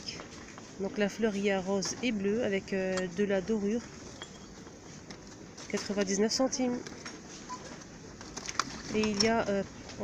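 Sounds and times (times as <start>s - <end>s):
low shop background: 0.0s - 10.0s.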